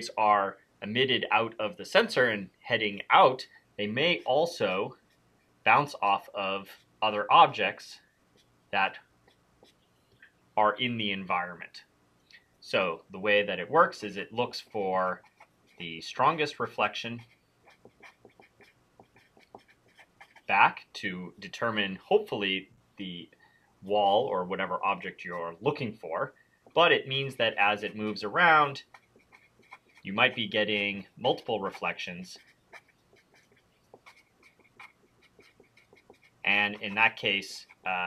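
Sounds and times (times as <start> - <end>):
marker squeaking on paper: 8.3 - 9.9, 15.1 - 20.6, 26.7 - 38.0.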